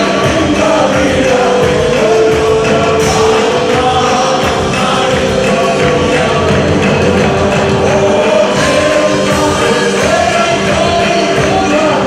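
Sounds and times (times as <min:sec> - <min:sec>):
congregation singing: 0:00.0 - 0:12.0
instrumental accompaniment: 0:00.0 - 0:12.0
women singing: 0:00.0 - 0:12.0.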